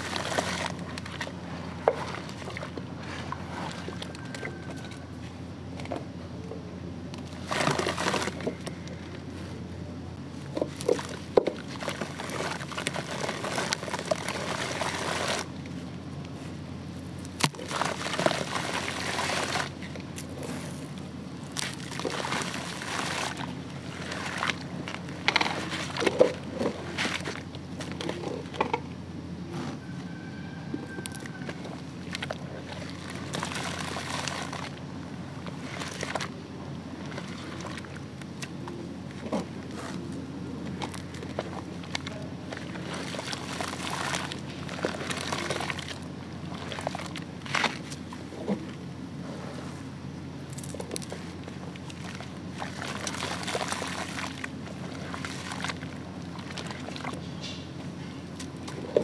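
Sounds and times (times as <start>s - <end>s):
concrete chunks sloshing in water: 0.0s - 5.0s, 10.6s - 15.6s, 17.4s - 20.9s, 21.5s - 28.7s, 32.0s - 34.8s, 40.7s - 48.5s, 50.5s - 57.3s.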